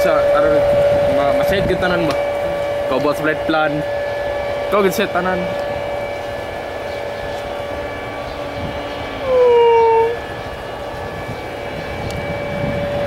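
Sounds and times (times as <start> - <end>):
jet engines whining: 0.0 - 13.0
tone sliding down in pitch: 7.9 - 11.4.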